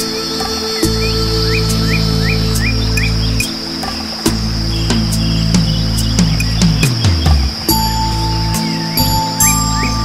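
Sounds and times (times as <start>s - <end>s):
bird chirping: 0.0s - 10.0s
high insect trill: 0.0s - 10.0s
slow meditation music: 0.0s - 10.0s.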